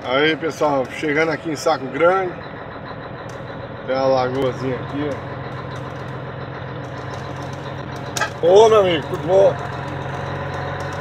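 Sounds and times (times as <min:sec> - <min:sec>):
truck engine running: 0:00.0 - 0:11.0.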